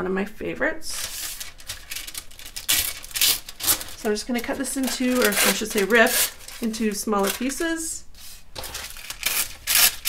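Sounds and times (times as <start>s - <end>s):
paper rustling and crinkling: 1.0s - 10.0s.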